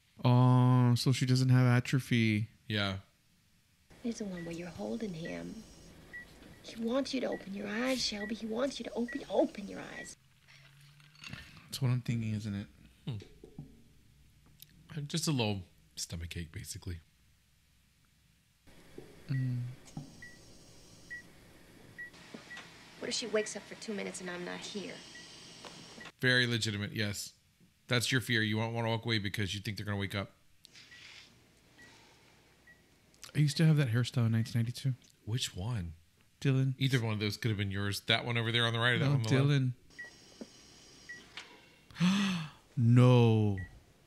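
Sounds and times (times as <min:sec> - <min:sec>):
patient monitor beeping: 0:04.0 - 0:10.2, 0:19.2 - 0:21.4, 0:25.0 - 0:26.2, 0:32.6 - 0:34.6, 0:39.1 - 0:41.4.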